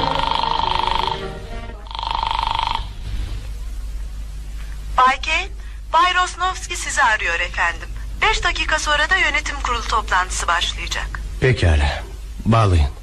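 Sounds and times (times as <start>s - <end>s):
orchestral music: 0.0s - 1.9s
woman's voice: 5.0s - 11.2s.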